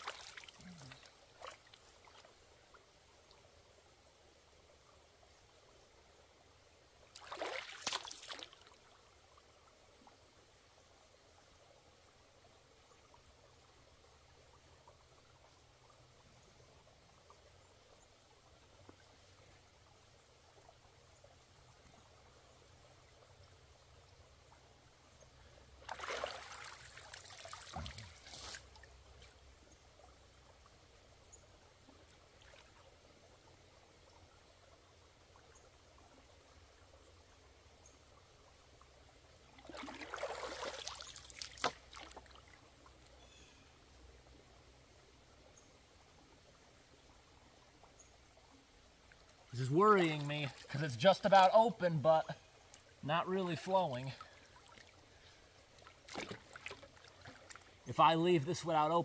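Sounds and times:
water splashing and sloshing: 0:00.0 - 0:03.5, 0:07.0 - 0:10.1, 0:25.4 - 0:30.8, 0:31.4 - 0:37.2, 0:38.4 - 0:43.2, 0:46.2 - 0:53.0, 0:53.6 - 0:58.0
faint water trickle: 0:00.0 - 0:59.0.

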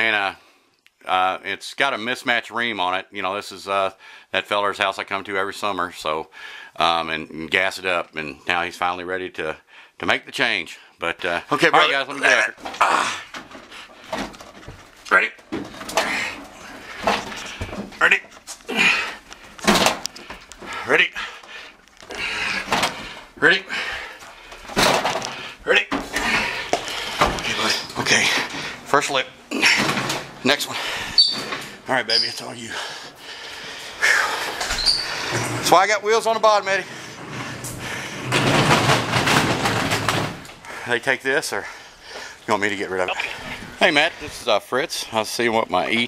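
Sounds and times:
person calling out: 0:11.7 - 0:13.2
men grunting and breathing: 0:11.8 - 0:14.8, 0:15.7 - 0:31.9, 0:32.5 - 0:35.6, 0:36.8 - 0:42.5, 0:43.1 - 0:44.4.

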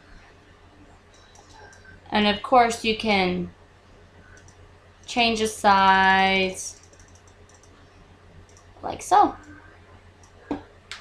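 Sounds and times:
low steady hum: 0:00.0 - 0:11.0
computer mouse clicks: 0:01.1 - 0:02.0, 0:04.3 - 0:04.6, 0:06.7 - 0:08.7.

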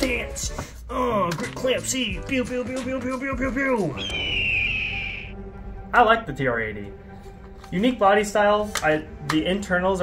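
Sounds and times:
high whistled tone gliding down: 0:04.0 - 0:05.4.

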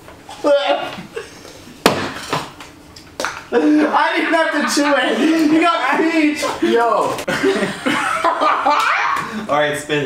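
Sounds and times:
sharp knock: 0:01.8 - 0:02.2.

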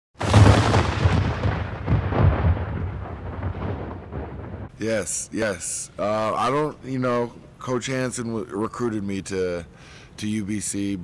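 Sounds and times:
rumbling noisy tail: 0:00.2 - 0:04.7
deep boom-like hits: 0:00.2 - 0:04.8.

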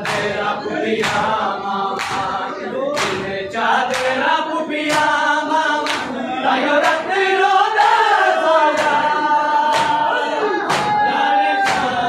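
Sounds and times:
hands slapping chests: 0:00.0 - 0:01.4, 0:02.0 - 0:02.4, 0:03.0 - 0:04.2, 0:04.8 - 0:05.2, 0:05.8 - 0:06.1, 0:08.7 - 0:09.1, 0:09.7 - 0:10.1, 0:10.7 - 0:12.0
men chanting in unison: 0:00.0 - 0:12.0.

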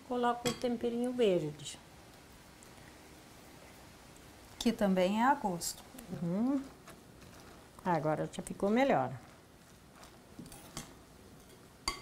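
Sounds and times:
spoon stirring dough: 0:06.0 - 0:12.0.

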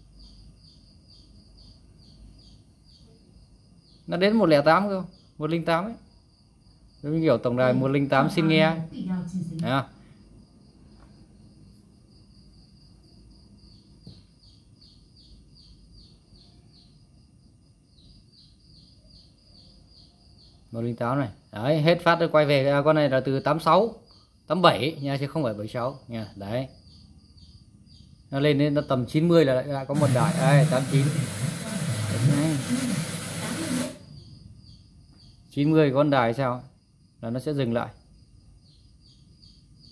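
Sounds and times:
low room noise: 0:00.0 - 0:39.9
rapid high chirping: 0:29.8 - 0:34.8
radio static hiss: 0:29.9 - 0:34.0
high-pitched whine: 0:29.9 - 0:34.2.

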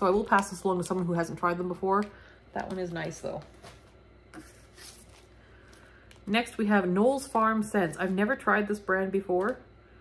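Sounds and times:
plastic wrapping rustling: 0:00.0 - 0:06.5.

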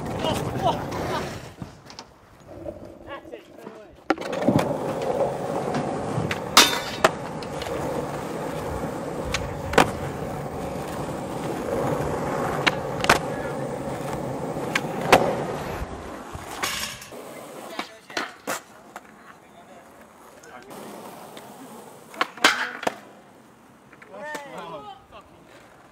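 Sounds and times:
skateboard clacks: 0:00.0 - 0:25.9
skateboard wheels rolling on concrete: 0:00.0 - 0:25.9.

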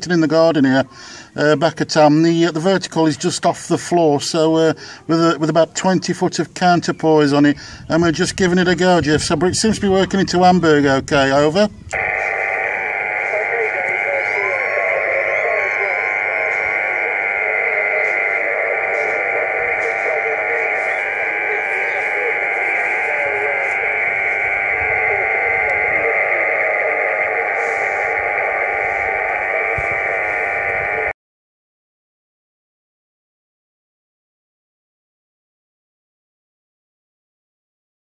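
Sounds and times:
radio interference buzzing: 0:11.8 - 0:31.2
faint voice over radio: 0:12.0 - 0:31.1.

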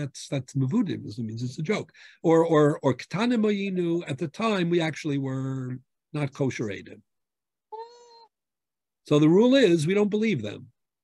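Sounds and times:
faint cat meow: 0:07.7 - 0:08.3.

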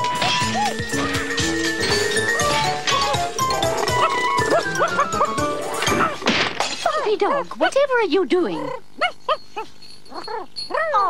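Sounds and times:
small dog yapping: 0:00.2 - 0:01.0, 0:02.3 - 0:05.2, 0:08.6 - 0:11.0.

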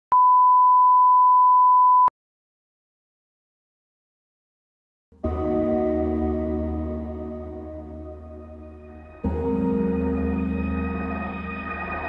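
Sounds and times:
steady pure test tone beep: 0:00.1 - 0:02.1.

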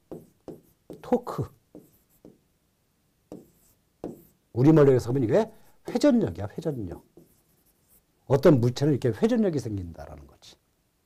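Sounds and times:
chalk scratching on chalkboard: 0:00.1 - 0:02.4, 0:03.3 - 0:04.4, 0:06.6 - 0:08.1.

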